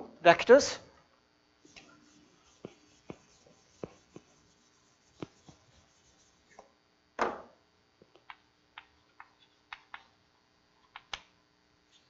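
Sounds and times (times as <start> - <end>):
room hiss: 1.5 - 7.0
chalk tapping and scraping on blackboard: 1.7 - 6.7.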